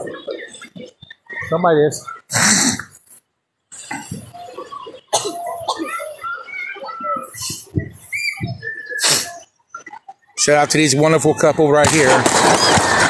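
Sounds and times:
people talking in background: 0.0 - 13.0.

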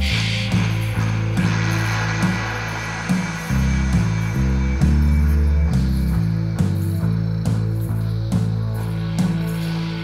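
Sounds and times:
electronic music with synth bass: 0.0 - 10.0.

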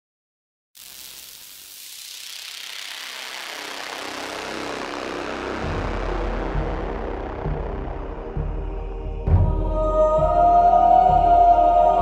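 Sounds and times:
hiss-like noise swell: 0.8 - 9.0
deep bass drone: 3.8 - 12.0.

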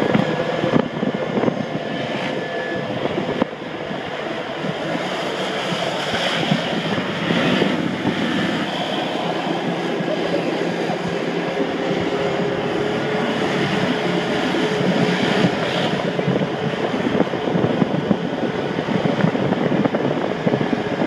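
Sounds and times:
off-road vehicle engines running: 0.0 - 21.0
wind on microphone: 0.0 - 21.0.

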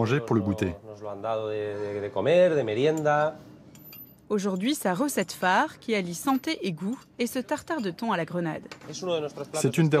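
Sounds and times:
man speaking: 0.0 - 0.8.

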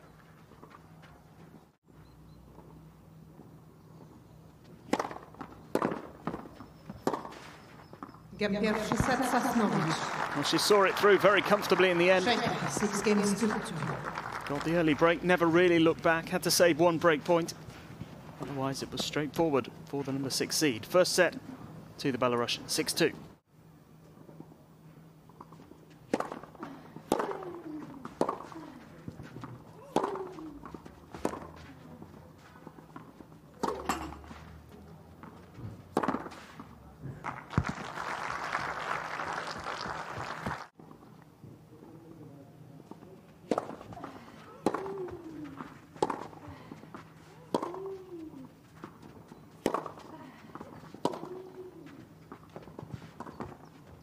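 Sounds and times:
racket hitting tennis ball: 4.9 - 7.5, 26.1 - 31.7, 33.6 - 34.5, 35.2 - 36.7, 43.5 - 46.4, 47.4 - 48.5, 49.6 - 52.0
applause: 8.7 - 15.2, 37.2 - 40.7.

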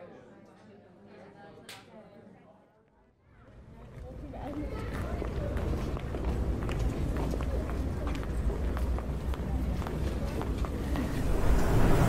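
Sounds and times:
footsteps on stone paving: 3.9 - 11.2
low outdoor rumble: 5.0 - 12.0.

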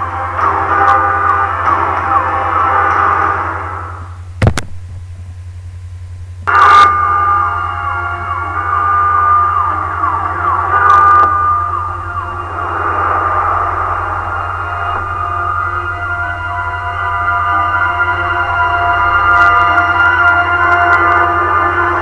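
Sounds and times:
low hum: 0.0 - 22.0
car alarm falling electronic tones: 6.5 - 22.0.

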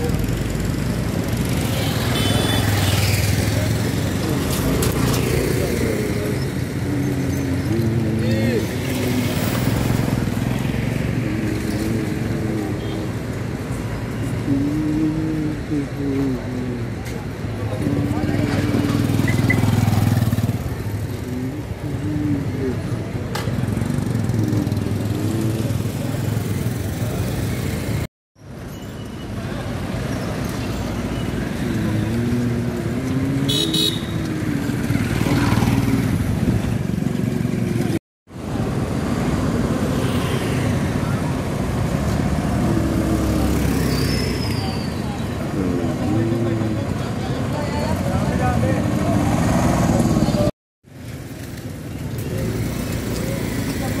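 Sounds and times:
motorcycle and car engines passing: 0.0 - 28.1, 29.4 - 54.0
indistinct voices: 3.3 - 19.6, 20.7 - 27.8
car horn toot: 33.5 - 34.1.

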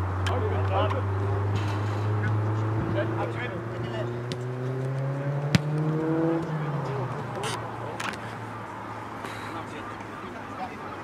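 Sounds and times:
engine humming: 0.0 - 10.4
football kicked hard: 4.2 - 4.4, 5.5 - 5.9.

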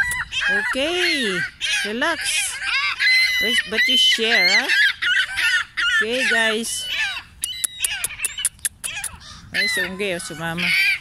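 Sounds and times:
gulls calling: 0.0 - 11.0
sharp high ticks: 7.4 - 9.2.

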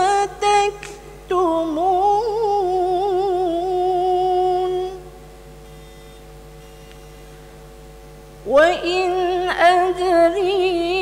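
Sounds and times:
woman reciting melodically: 0.0 - 5.2, 8.4 - 11.0
faint room hum: 0.0 - 11.0.

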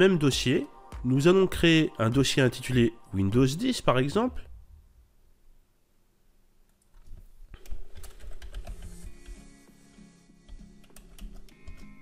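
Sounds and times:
soft background music: 0.0 - 4.6, 7.9 - 12.0
typing on computer keyboard: 6.9 - 9.4, 10.5 - 11.9.

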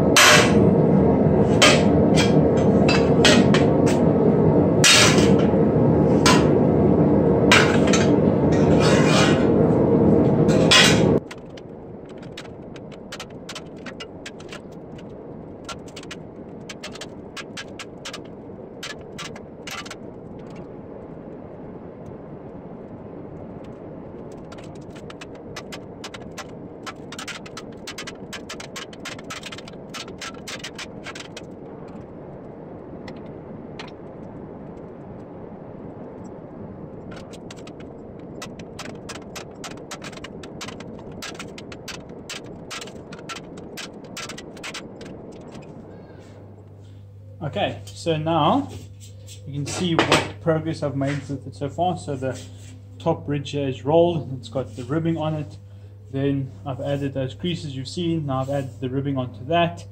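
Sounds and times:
rushing background noise: 0.0 - 59.9.

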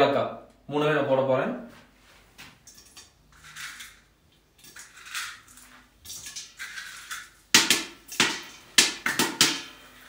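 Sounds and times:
sharp cracks on steel pot: 6.1 - 9.8.

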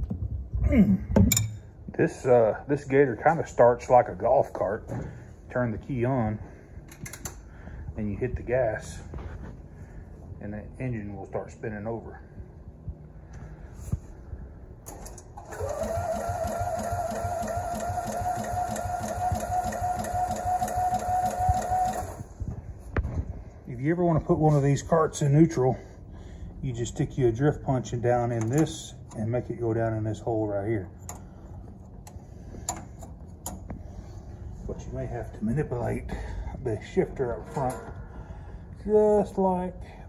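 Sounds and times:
steady low hum: 0.0 - 40.0
light metal clicks and taps: 6.9 - 7.4, 31.0 - 33.8
engine starter whine: 14.8 - 22.4.

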